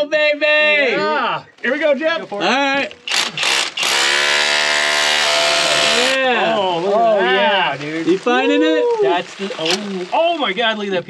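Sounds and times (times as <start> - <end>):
cordless drill drilling into rock: 3.1 - 6.2.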